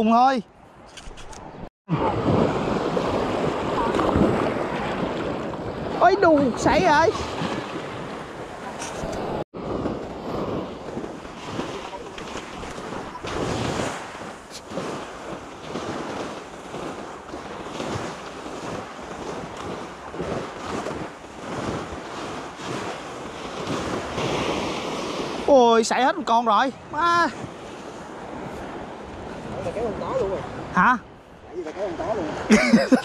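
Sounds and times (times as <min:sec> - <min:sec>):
wind buffeting microphone: 0:00.7 - 0:25.9
small waves breaking on beach: 0:01.9 - 0:33.0.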